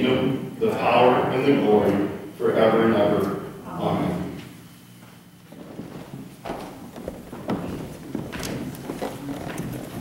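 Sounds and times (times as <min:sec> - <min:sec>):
footsteps: 0:04.3 - 0:10.0
shuffling: 0:04.4 - 0:10.0.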